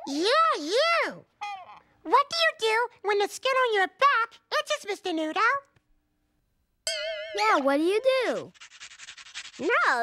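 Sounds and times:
fingers scratching through hair: 0:07.9 - 0:10.0.

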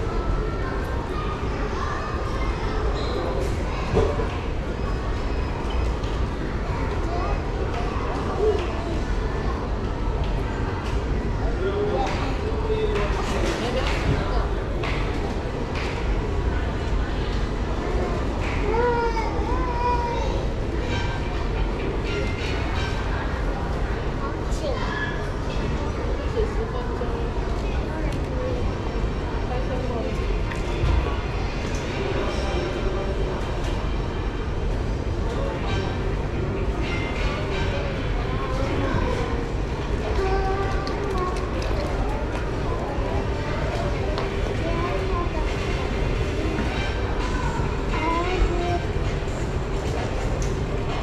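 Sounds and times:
indistinct background noise: 0:00.0 - 0:51.0
indoor public space rumble: 0:00.0 - 0:51.0.

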